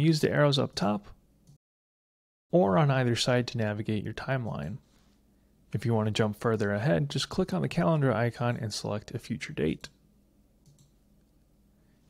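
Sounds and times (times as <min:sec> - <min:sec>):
computer mouse click: 0:10.6 - 0:11.0.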